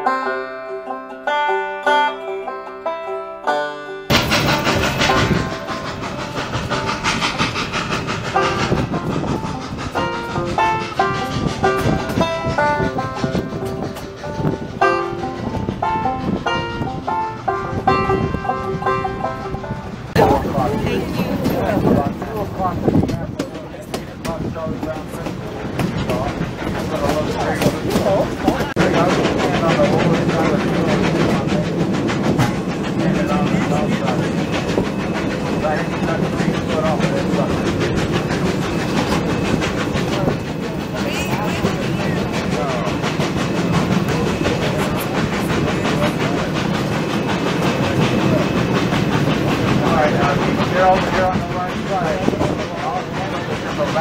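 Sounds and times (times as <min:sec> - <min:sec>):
steam train running: 0:00.0 - 0:54.0
wheels clattering over rail joints: 0:04.1 - 0:54.0.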